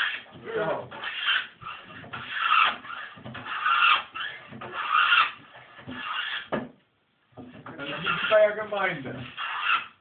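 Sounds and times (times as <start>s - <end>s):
hand plane shaving wood: 0.0s - 6.5s, 7.5s - 10.0s.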